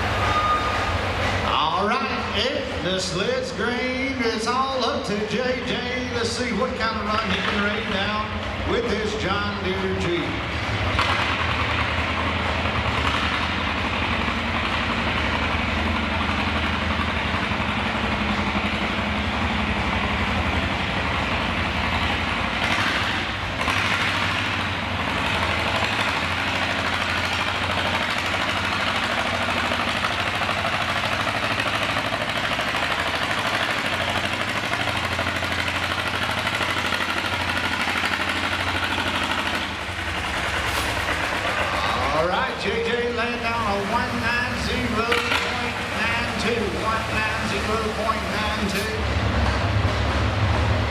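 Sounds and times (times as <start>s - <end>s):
tractor engine idling: 0.0s - 50.9s.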